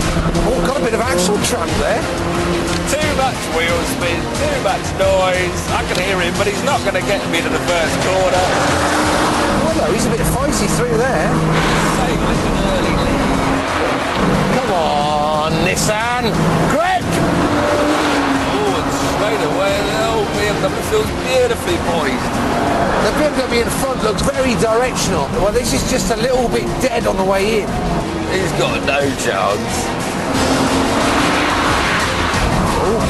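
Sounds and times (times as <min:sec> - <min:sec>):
car engine at high revs: 0:00.0 - 0:33.0
road noise: 0:00.0 - 0:33.0.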